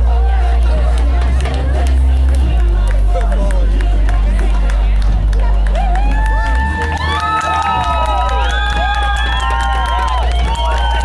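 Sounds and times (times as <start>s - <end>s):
crowd voices and cheers: 0.0s - 11.0s.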